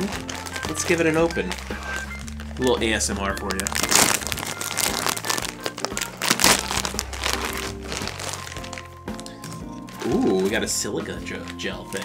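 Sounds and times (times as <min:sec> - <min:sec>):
background music: 0:00.0 - 0:12.0
crinkly packaging being opened: 0:00.0 - 0:12.0.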